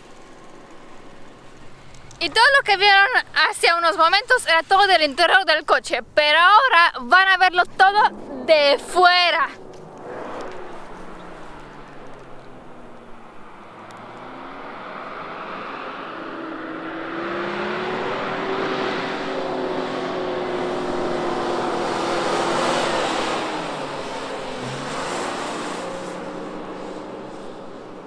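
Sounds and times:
suv engine revving: 0:00.0 - 0:03.3, 0:07.1 - 0:28.0.

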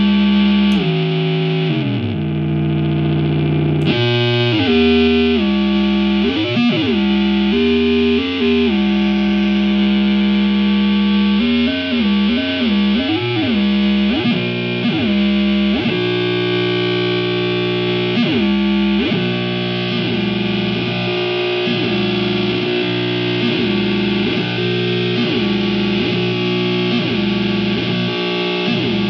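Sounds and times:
electric guitar feedback: 0:00.0 - 0:29.0.

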